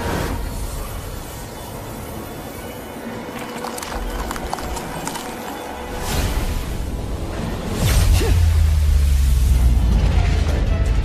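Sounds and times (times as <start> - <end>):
soundtrack music: 0.0 - 11.0.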